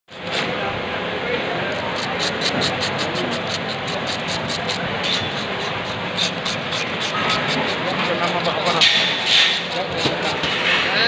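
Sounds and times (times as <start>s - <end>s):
market noise: 0.1s - 11.0s
fish scaler scraping scales: 1.6s - 11.0s.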